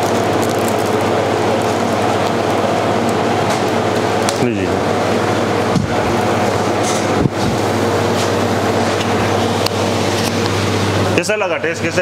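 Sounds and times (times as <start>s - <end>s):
refrigeration machinery humming: 0.0s - 12.0s.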